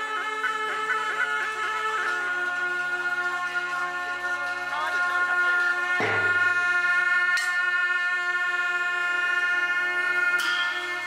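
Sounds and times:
shawms playing long notes: 0.0s - 11.0s
percussion strike: 4.2s - 7.7s, 10.2s - 11.0s.

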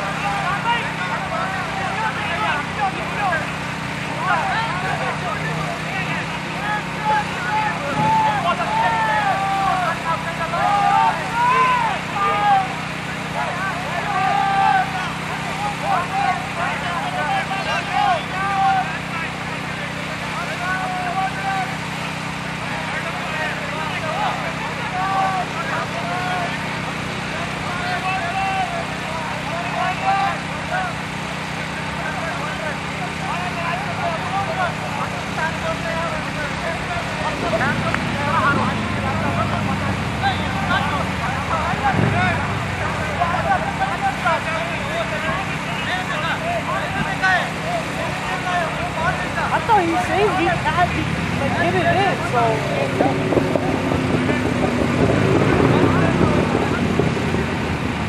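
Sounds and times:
distant people talking: 0.0s - 58.0s.

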